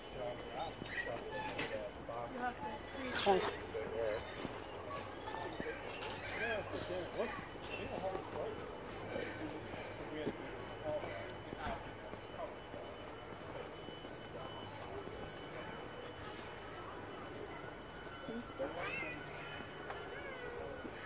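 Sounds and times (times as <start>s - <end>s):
distant voices: 0.0s - 21.0s
footsteps on paved path: 0.4s - 15.4s.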